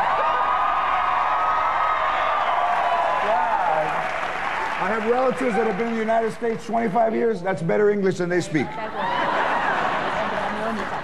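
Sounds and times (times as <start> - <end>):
audience applauding and cheering: 0.0 - 7.0
man speaking: 4.8 - 8.8.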